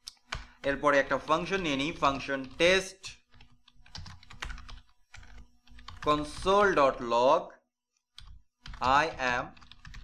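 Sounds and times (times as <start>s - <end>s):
computer keyboard typing: 0.1s - 7.0s, 8.1s - 10.0s.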